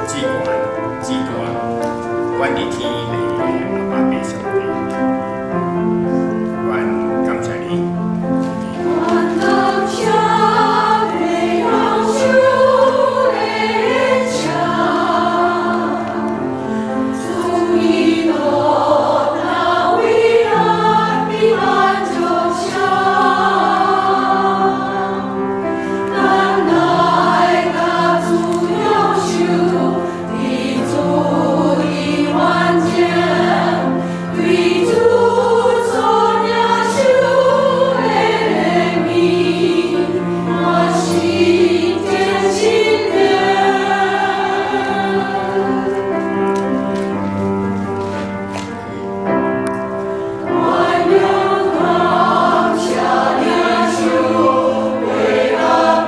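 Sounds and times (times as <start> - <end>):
choir singing a hymn: 0.0 - 48.3, 48.9 - 56.0.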